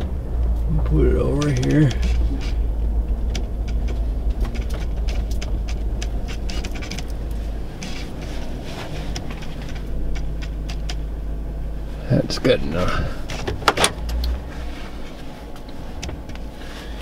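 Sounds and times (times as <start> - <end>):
sharp clicks and crackles: 0.0 - 11.1
truck engine rumble: 0.0 - 17.0.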